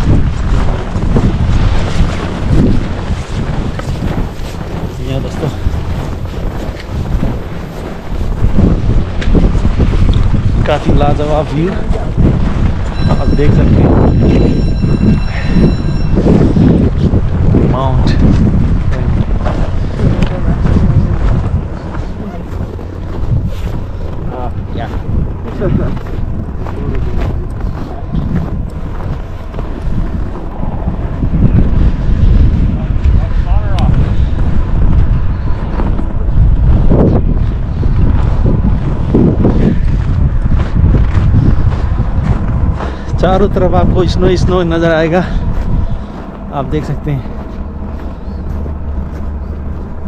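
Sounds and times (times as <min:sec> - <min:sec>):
wind buffeting microphone: 0:00.0 - 0:50.0
people's voices: 0:19.3 - 0:28.6.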